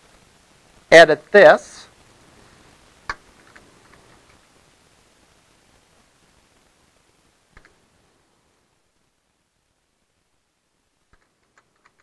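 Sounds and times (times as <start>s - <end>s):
computer clicks: 11.1s - 12.0s.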